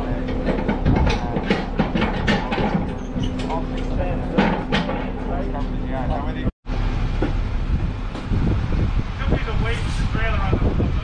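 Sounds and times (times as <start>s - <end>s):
low uneven rumble: 0.0s - 11.0s
wind buffeting microphone: 0.0s - 11.0s.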